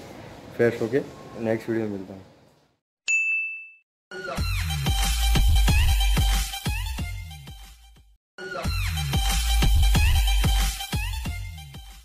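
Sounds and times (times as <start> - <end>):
bright ding chime: 3.1 - 3.8
electronic music with steady beat: 8.4 - 12.0.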